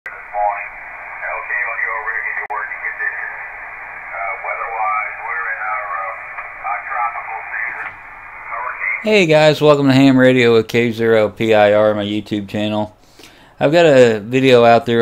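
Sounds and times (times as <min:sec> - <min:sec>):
person speaking over radio: 0:00.1 - 0:03.5, 0:04.1 - 0:09.1
steady radio hiss: 0:00.1 - 0:15.0.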